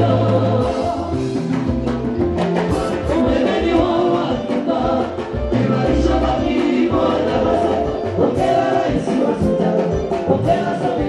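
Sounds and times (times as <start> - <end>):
bass and drums: 0.0 - 11.0
group singing in harmony: 0.0 - 11.0.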